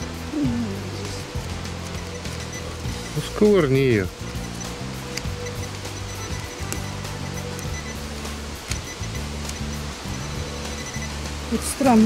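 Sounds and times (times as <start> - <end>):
background music of low notes: 0.0 - 12.0
faint clicks: 8.6 - 9.7.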